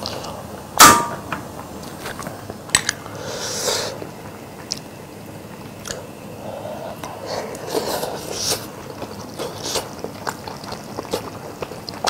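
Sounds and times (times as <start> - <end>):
metal clang: 0.8 - 1.5.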